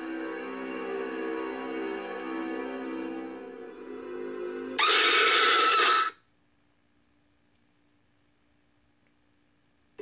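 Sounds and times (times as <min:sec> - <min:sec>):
loud harsh screech: 0:04.8 - 0:06.2.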